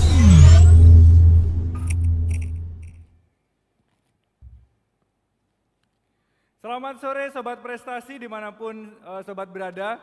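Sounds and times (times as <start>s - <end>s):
deep bass hit with falling swoop: 0.0s - 3.0s
rising whoosh: 0.0s - 3.0s.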